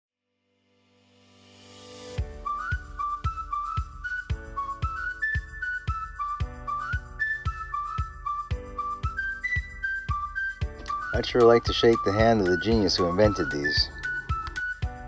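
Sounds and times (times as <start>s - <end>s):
whistled melody: 2.2s - 15.0s
steady beat: 10.8s - 14.6s.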